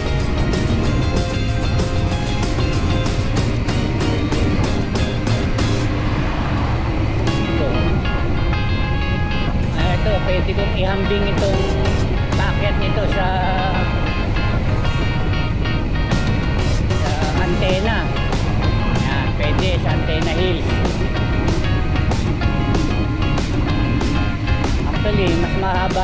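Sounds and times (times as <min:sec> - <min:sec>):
music with singing voice: 0:00.0 - 0:05.9, 0:09.5 - 0:26.0
steady low rumble: 0:00.0 - 0:26.0.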